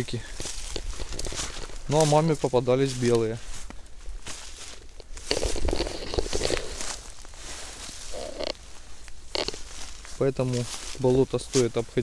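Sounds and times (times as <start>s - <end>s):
rustling in dry leaves: 0.0s - 12.0s.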